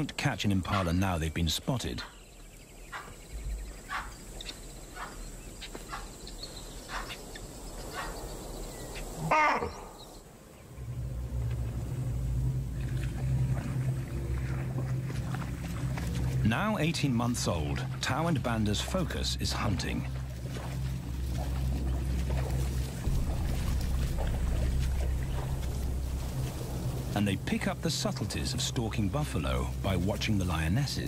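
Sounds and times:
animal alarm calls: 0:03.8 - 0:05.2, 0:09.0 - 0:10.0
low steady drone: 0:10.3 - 0:31.0.

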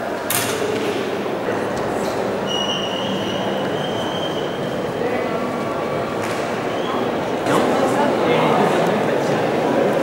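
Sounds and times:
indoor hall ambience: 0:00.0 - 0:10.0.

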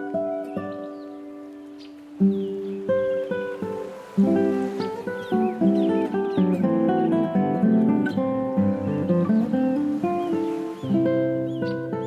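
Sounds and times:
classical guitar plucked notes: 0:00.0 - 0:12.0
bird chirps: 0:00.1 - 0:03.4, 0:04.5 - 0:07.1, 0:08.0 - 0:12.0.

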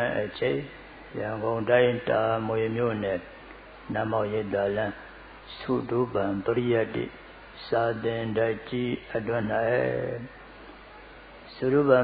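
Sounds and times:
man chanting: 0:00.0 - 0:03.3, 0:03.9 - 0:10.4, 0:11.5 - 0:12.0.

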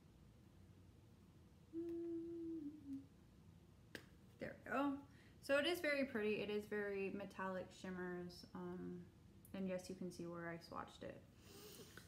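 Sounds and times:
woman humming: 0:01.7 - 0:03.2.

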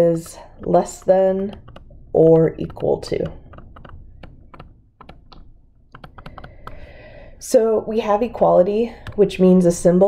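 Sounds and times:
stylus tapping on tablet screen: 0:00.0 - 0:06.9, 0:08.9 - 0:09.9.

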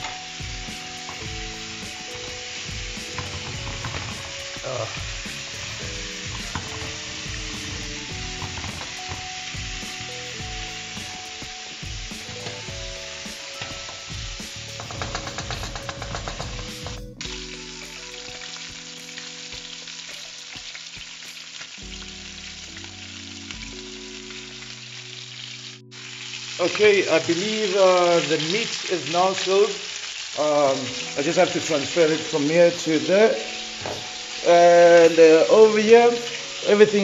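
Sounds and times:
onions sizzling in a pan: 0:00.0 - 0:37.0.

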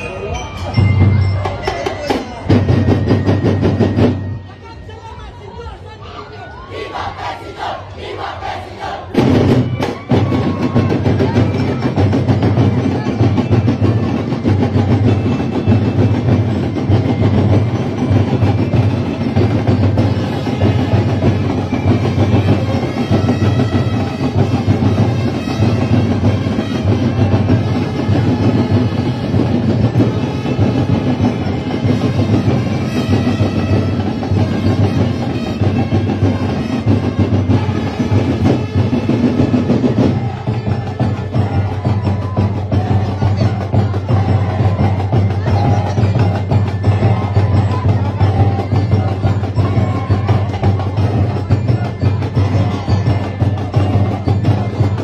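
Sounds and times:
crowd shouting and cheering: 0:00.0 - 0:55.0
drum and percussion band: 0:00.0 - 0:55.0.

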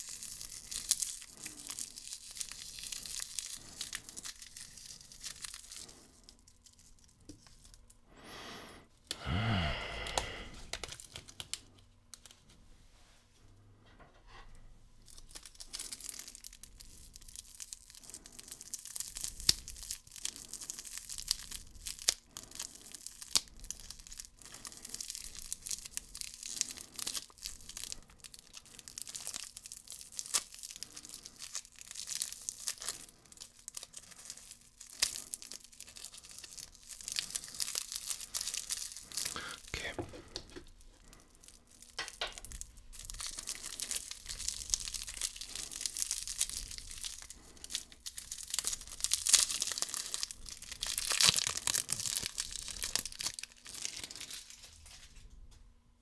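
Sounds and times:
cellophane wrapper crinkling: 0:00.0 - 0:12.6, 0:15.0 - 0:55.6.

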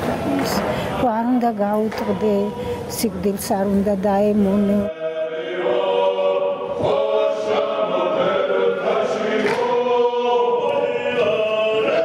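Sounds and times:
folk choir singing: 0:04.7 - 0:12.0.

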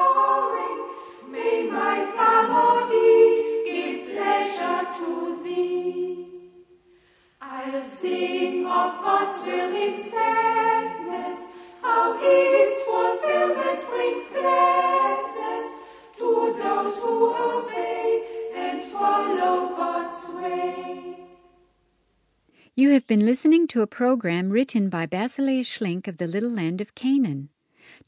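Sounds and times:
choir singing a cappella: 0:00.0 - 0:21.8.

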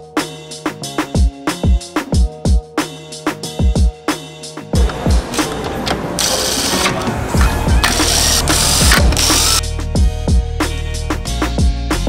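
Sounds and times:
background music with drum beat: 0:00.0 - 0:12.0
cordless power driver running: 0:04.8 - 0:09.6.

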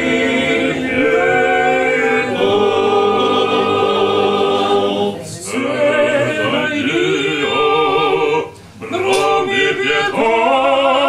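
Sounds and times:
men singing a cappella in harmony: 0:00.0 - 0:11.0.

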